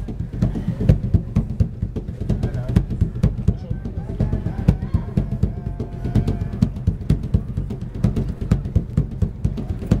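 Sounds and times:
hand drum played with hands: 0.0 - 10.0.

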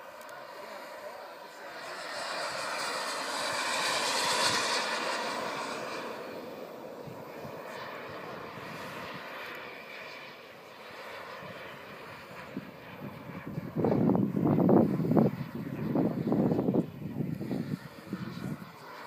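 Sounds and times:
model jet engine flying past: 0.0 - 19.0.

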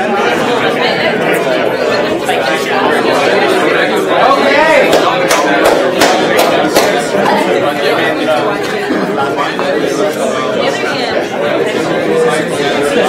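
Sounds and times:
hubbub of people chatting: 0.0 - 13.0.

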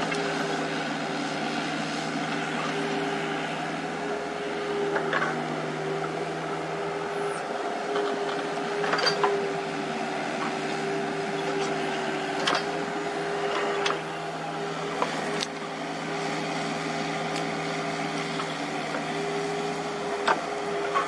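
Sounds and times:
excavator engine drone: 0.0 - 21.0.

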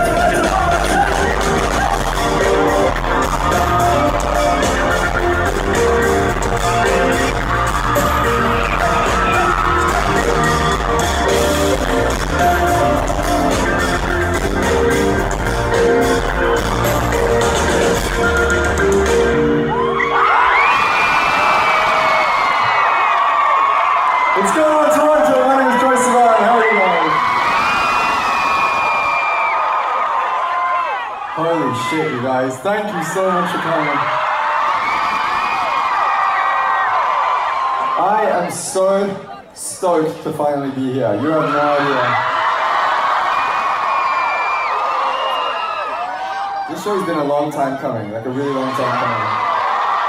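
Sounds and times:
live band playing pop song: 0.0 - 20.5
crowd screaming and cheering: 0.0 - 50.0.

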